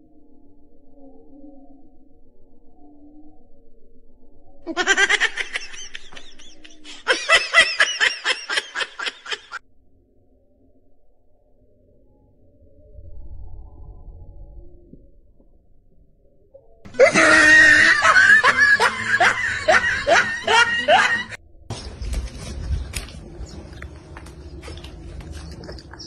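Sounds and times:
high-pitched stifled giggling: 4.7 - 9.6, 16.9 - 21.4
person laughing hard: 4.7 - 9.6, 16.9 - 21.4.

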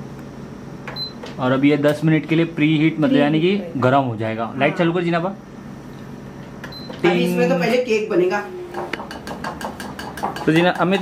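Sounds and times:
oven control panel beep: 0.9 - 1.3, 6.6 - 7.0.

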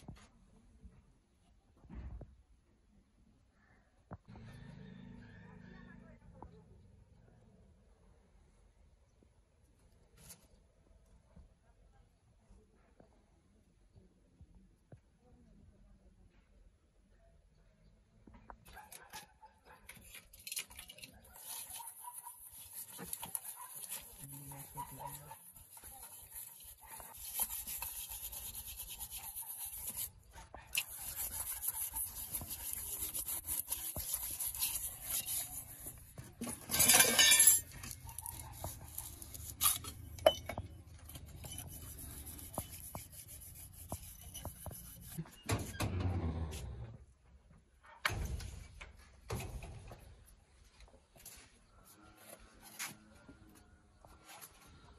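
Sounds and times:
scrubbing steel pots: 20.8 - 30.1, 30.7 - 45.3.

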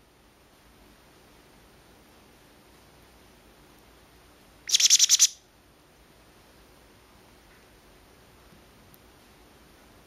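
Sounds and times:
parrot calling high notes: 4.7 - 5.4.

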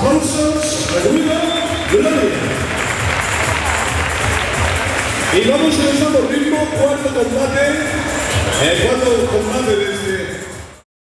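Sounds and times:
background music with steady beat: 0.0 - 10.8
audience applauding: 0.6 - 6.3.

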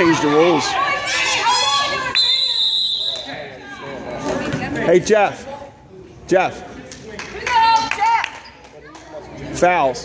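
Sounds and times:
referee's whistle: 2.1 - 3.4.

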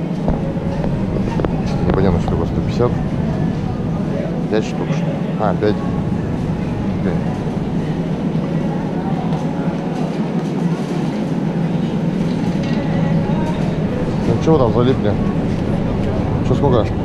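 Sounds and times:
shopping trolley rattling rumble: 0.0 - 17.0.

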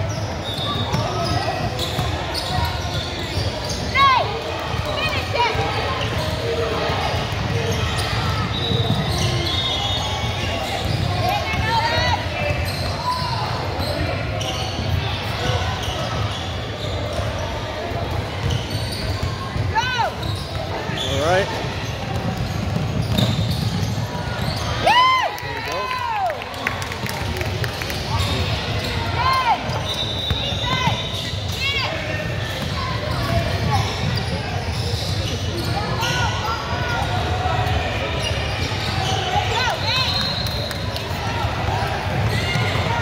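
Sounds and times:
indistinct chatter: 0.0 - 43.0
sneakers squeaking: 0.0 - 43.0
basketball bouncing on court: 0.1 - 13.6, 17.9 - 24.8, 40.8 - 43.0.

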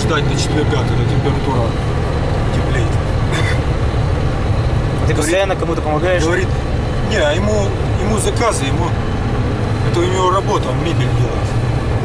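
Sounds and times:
diesel van engine rumble: 0.0 - 12.0.

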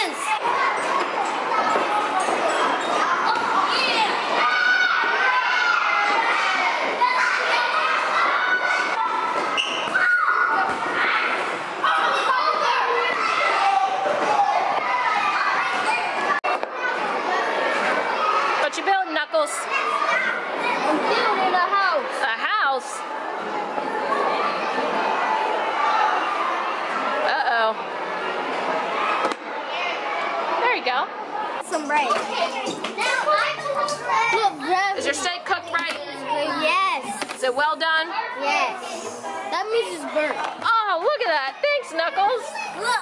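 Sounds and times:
children shouting and playing: 0.0 - 43.0.

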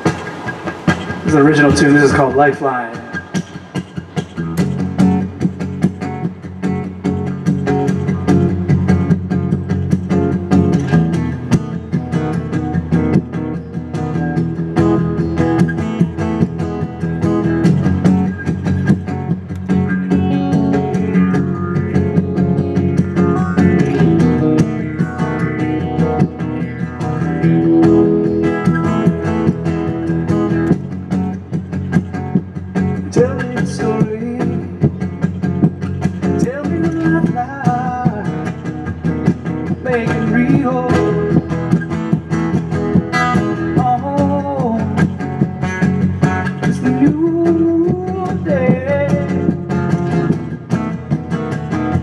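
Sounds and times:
guitar picking notes and chords: 0.0 - 52.0.

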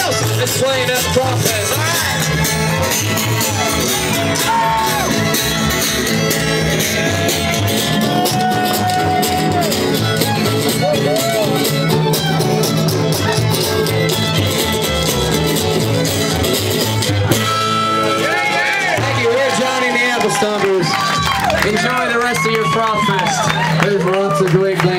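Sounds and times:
voices: 0.0 - 5.8
string band playing: 0.0 - 24.9.

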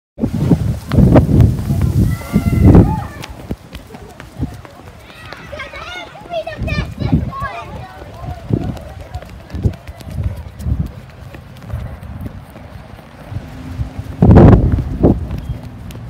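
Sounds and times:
wind and handling rumble: 0.2 - 16.0
running footfalls: 0.3 - 16.0
children calling out: 1.7 - 10.1.

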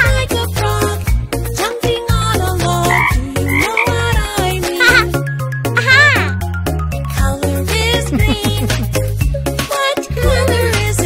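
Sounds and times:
upbeat children's song: 0.0 - 5.2, 5.8 - 11.0
cartoon frog croaks: 2.8 - 5.2, 5.8 - 6.4.

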